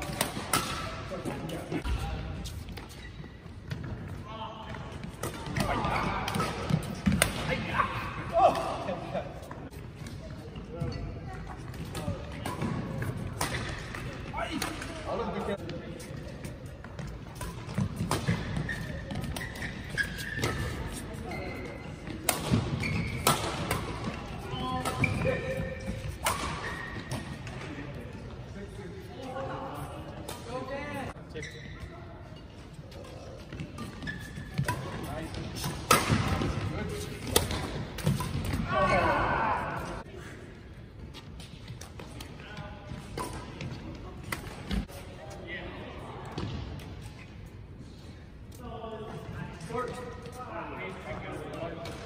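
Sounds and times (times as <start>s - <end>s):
racket hitting shuttlecock: 0.0s - 1.0s, 5.2s - 7.6s, 17.0s - 20.8s, 22.1s - 27.4s, 33.5s - 38.7s
sneakers squeaking on court: 0.0s - 7.5s, 15.9s - 27.7s, 31.2s - 39.4s
voices in gym hall: 0.0s - 52.0s
rackets striking shuttlecock: 22.2s - 27.2s, 34.6s - 36.5s.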